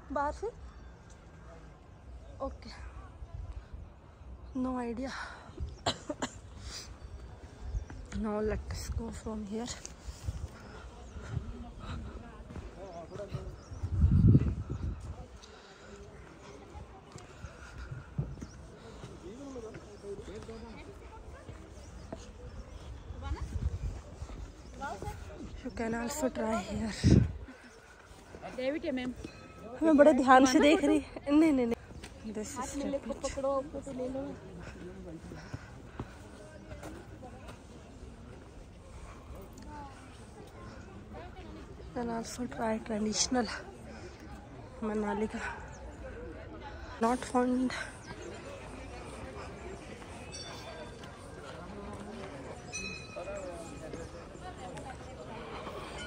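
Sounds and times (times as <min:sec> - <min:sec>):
faint voices: 0:00.0 - 0:56.0
passers-by talking: 0:00.0 - 0:56.0
footsteps on dirt path: 0:07.2 - 0:45.4, 0:46.8 - 0:56.0.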